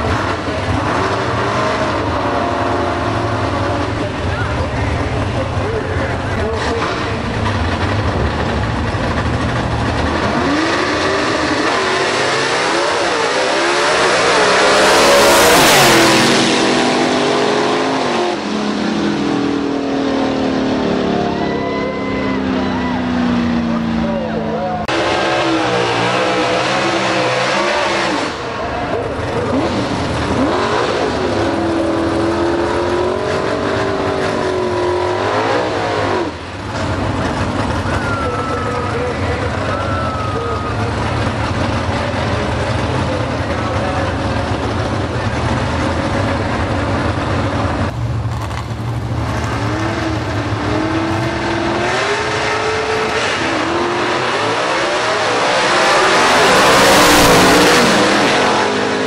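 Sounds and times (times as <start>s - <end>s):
car engine revving: 0.0s - 59.0s
drag cars launching full throttle: 0.0s - 59.0s.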